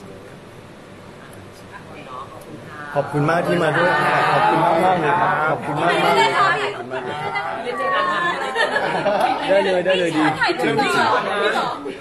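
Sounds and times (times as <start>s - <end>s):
people talking at once: 1.3s - 12.0s.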